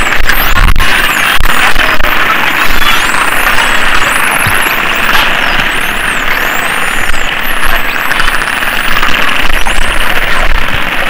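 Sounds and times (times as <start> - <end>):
dense underwater noise: 0.0 - 11.0
dolphin click trains: 0.0 - 11.0.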